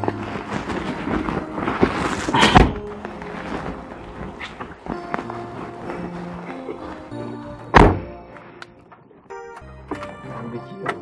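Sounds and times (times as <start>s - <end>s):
background music: 0.0s - 11.0s
car door shutting: 7.7s - 8.2s.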